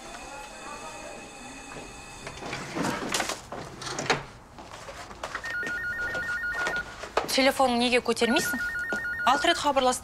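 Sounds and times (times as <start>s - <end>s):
telephone ringing electronic trill: 5.5s - 6.8s, 8.4s - 9.7s.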